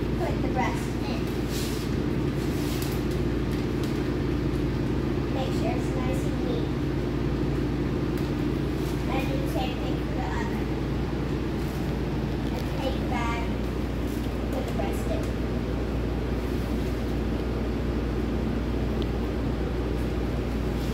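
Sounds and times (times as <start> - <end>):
low machine hum: 0.0 - 20.9
plastic film crinkling: 1.2 - 5.0, 13.5 - 15.4.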